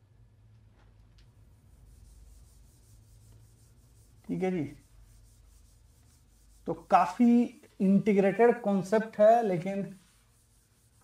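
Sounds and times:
hand rubbing on glass screen: 1.4 - 11.0.

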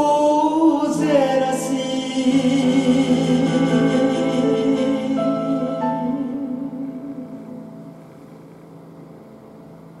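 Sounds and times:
faint hum and hiss: 0.0 - 10.0.

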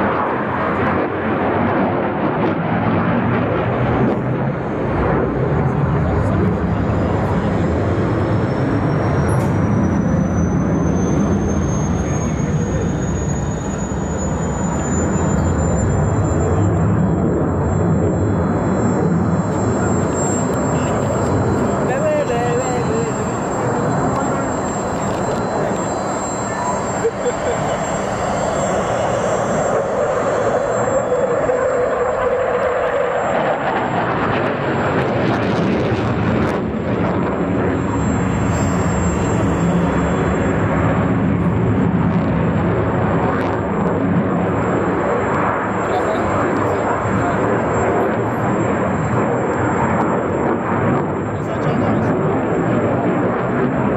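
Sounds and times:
fighter jet roaring overhead: 0.0 - 53.9.

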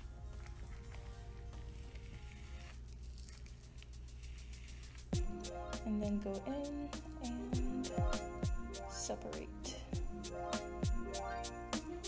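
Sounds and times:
brush rustling through hair: 0.0 - 7.1
faint background music: 0.0 - 12.0.

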